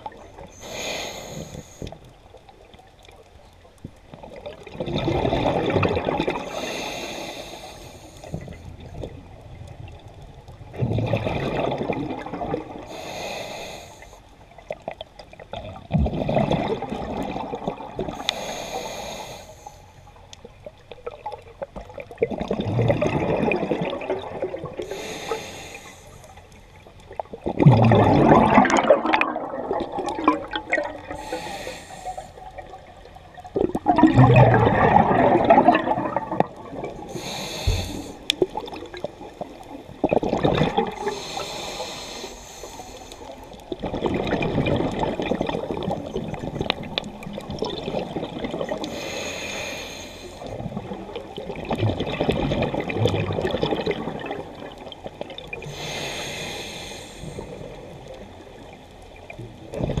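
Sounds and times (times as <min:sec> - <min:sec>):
inhale hiss through regulator: 0:00.5 - 0:02.0, 0:06.5 - 0:08.5, 0:12.9 - 0:14.4, 0:18.2 - 0:20.2, 0:24.8 - 0:26.5, 0:31.0 - 0:32.5, 0:37.0 - 0:38.5, 0:41.0 - 0:43.5, 0:48.8 - 0:50.5, 0:55.6 - 0:57.9
exhaled bubbles rushing: 0:04.2 - 0:06.6, 0:09.8 - 0:12.9, 0:15.5 - 0:18.2, 0:21.0 - 0:24.9, 0:27.1 - 0:31.4, 0:32.3 - 0:41.2, 0:43.5 - 0:48.9, 0:50.4 - 0:55.7.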